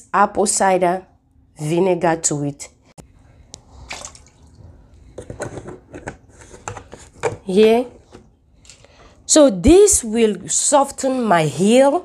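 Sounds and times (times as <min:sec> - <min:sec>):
water splashing in a basin: 0:03.8 - 0:04.6.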